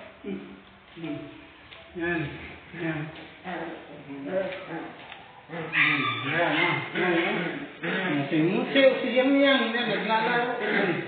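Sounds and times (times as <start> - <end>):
man humming: 0.2 - 4.9.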